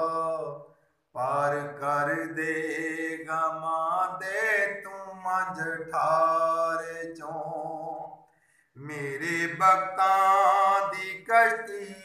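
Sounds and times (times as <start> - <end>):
man singing unaccompanied: 0.0 - 8.2, 8.8 - 12.0.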